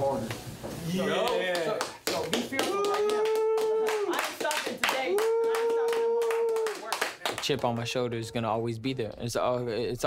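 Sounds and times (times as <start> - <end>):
people clapping hard: 1.2 - 8.0.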